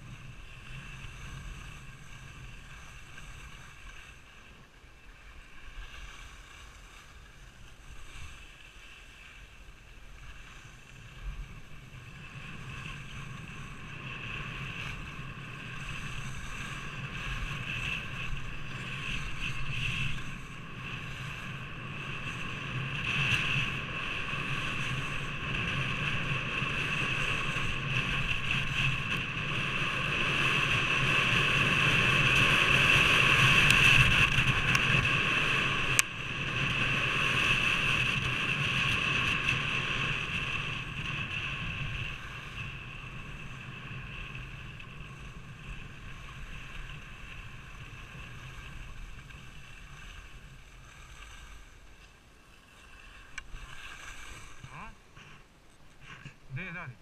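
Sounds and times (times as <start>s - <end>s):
wind on microphone: 0.0s - 4.4s, 5.2s - 52.0s.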